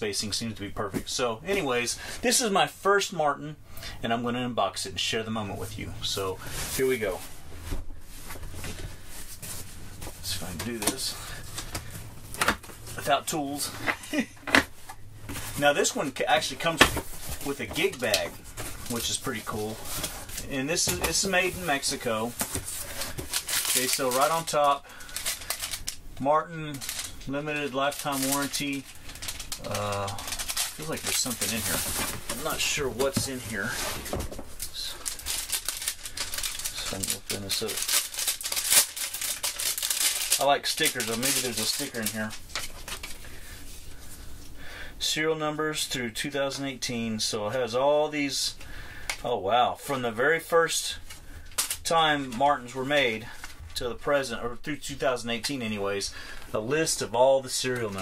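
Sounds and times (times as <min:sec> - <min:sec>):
plastic packet crinkling: 0:15.5 - 0:43.3
cardboard scraping and rustling: 0:30.2 - 0:43.1.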